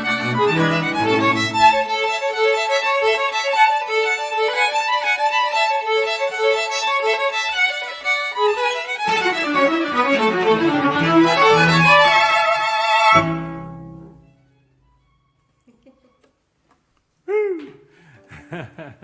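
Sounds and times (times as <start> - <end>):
cello low notes: 0.0 - 3.4, 8.4 - 12.4
violins and viola playing: 0.0 - 14.3.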